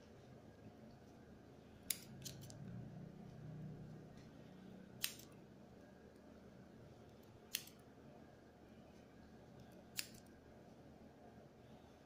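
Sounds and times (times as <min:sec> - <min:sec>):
faint room hum: 0:00.0 - 0:12.0
shears snipping hair: 0:05.0 - 0:05.3, 0:09.9 - 0:10.3.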